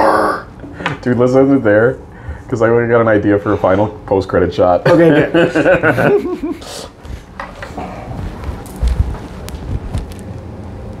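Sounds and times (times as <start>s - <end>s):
microphone handling rustle: 7.0s - 10.4s
sharp microphone clicks: 8.4s - 10.4s.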